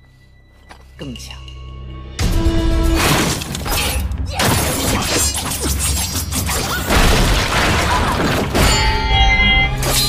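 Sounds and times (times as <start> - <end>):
dramatic music: 0.3 - 10.0
loud crash with shattering: 6.9 - 9.0.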